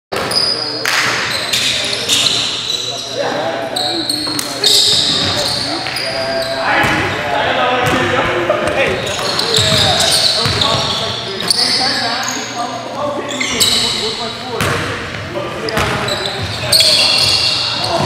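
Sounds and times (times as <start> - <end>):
sneakers squeaking on wooden floor: 0.2 - 7.2, 7.8 - 18.0
players calling out: 0.2 - 18.0
basketball bouncing: 7.8 - 10.9, 14.6 - 14.9.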